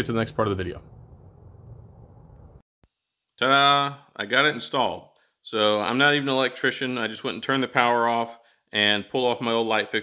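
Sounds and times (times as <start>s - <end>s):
low outdoor rumble: 0.0s - 2.6s.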